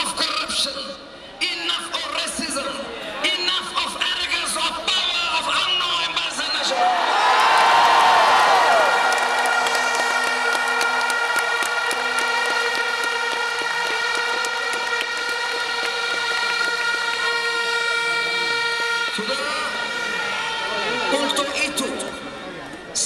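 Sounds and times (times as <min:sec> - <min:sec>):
stadium crowd cheering and clapping: 0:05.4 - 0:21.4.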